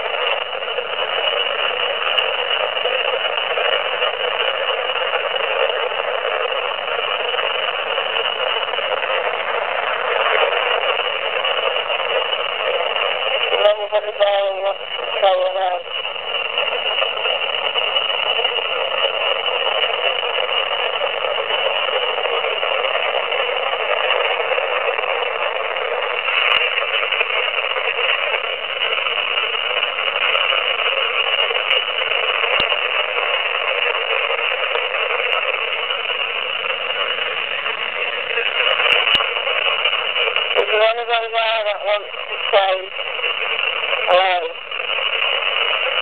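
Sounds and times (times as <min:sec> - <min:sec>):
radio static hiss: 0:00.0 - 0:46.0.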